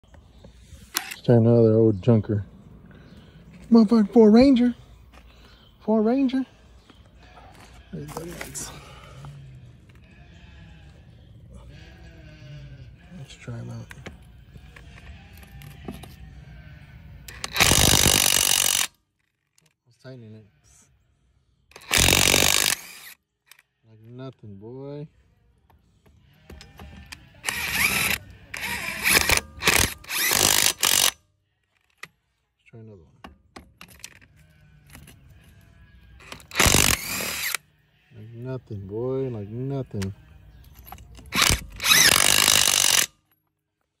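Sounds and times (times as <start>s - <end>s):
impact wrench hammering lug nut: 17.3s - 18.9s, 21.8s - 23.0s, 26.5s - 31.2s, 41.2s - 43.2s
impact wrench hammering lug nuts: 41.0s - 43.3s.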